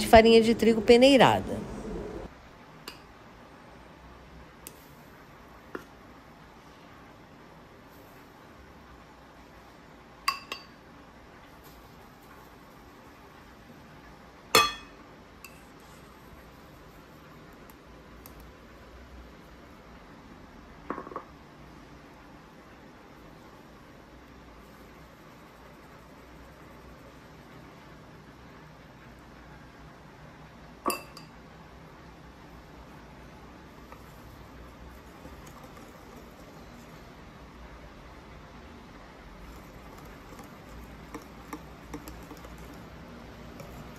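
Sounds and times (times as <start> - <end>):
utensil clinking ceramic bowl: 10.3 - 10.8, 14.6 - 15.0, 30.9 - 31.3
metal sieve clinking on ceramic bowl: 14.6 - 15.0
whisk scraping in flour: 39.4 - 43.9.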